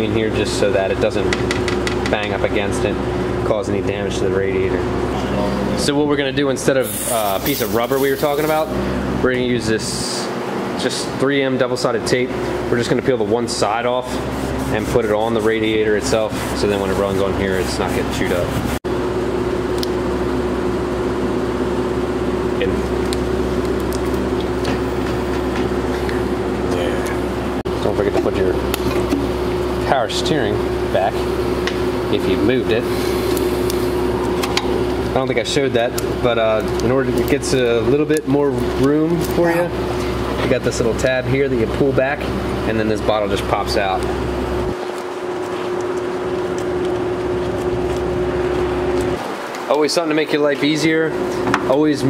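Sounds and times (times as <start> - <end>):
steady mechanical hum: 0.0 - 52.0
noisy hiss: 6.7 - 8.8.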